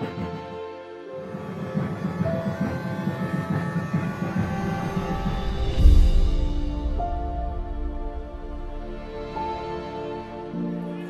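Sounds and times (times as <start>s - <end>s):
bagpipe melody with drone: 0.0s - 11.0s
low rumbling: 4.4s - 10.6s.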